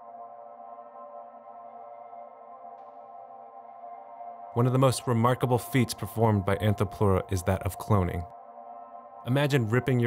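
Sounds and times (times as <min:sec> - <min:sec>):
soft synthesizer ambient music: 0:00.0 - 0:10.0.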